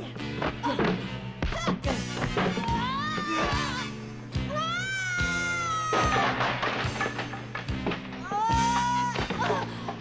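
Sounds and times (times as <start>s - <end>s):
dramatic film music: 0.0s - 10.0s.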